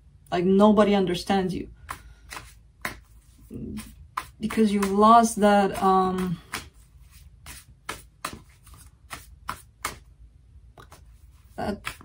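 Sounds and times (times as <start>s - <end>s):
cards being shuffled: 1.8s - 10.1s, 10.8s - 12.0s.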